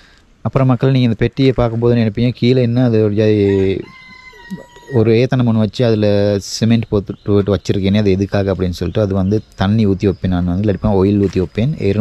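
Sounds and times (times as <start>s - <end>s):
man speaking: 0.4s - 4.0s, 4.8s - 12.0s
rooster crowing faintly: 3.3s - 5.4s.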